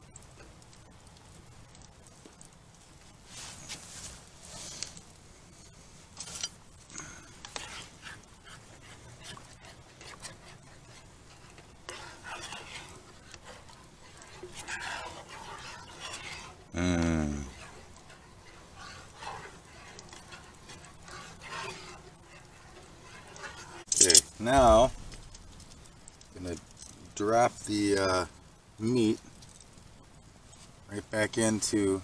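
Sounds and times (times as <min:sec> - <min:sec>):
soft rustling and scraping: 0:00.4 - 0:28.2, 0:28.8 - 0:32.0.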